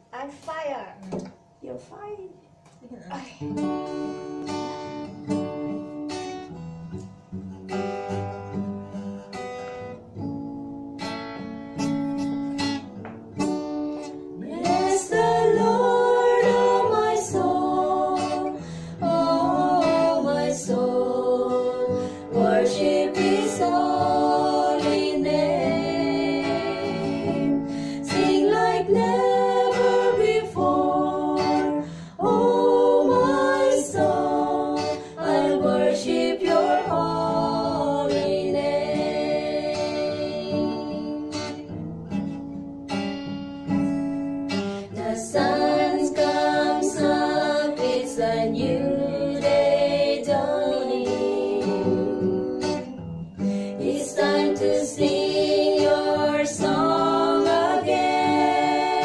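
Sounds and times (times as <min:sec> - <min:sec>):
acoustic guitar strumming: 0:00.0 - 0:59.0
women singing a worship song: 0:14.4 - 0:41.4, 0:44.8 - 0:59.0.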